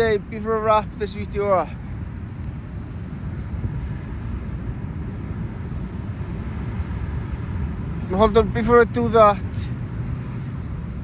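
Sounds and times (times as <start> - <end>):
wind blowing on microphone: 0.0 - 11.0.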